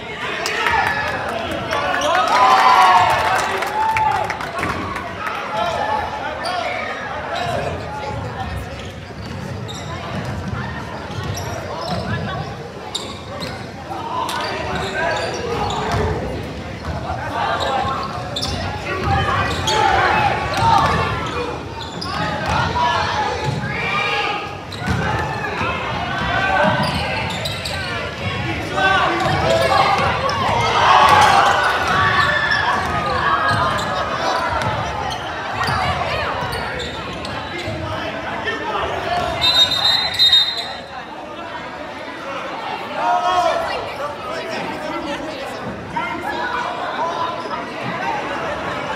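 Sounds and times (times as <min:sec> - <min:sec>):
referee's whistle: 0:39.3 - 0:40.9.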